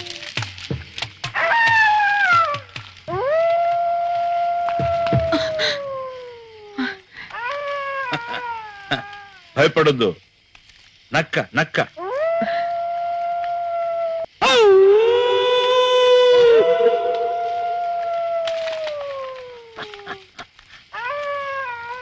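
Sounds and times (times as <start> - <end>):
jackal howling: 14.4 - 19.9.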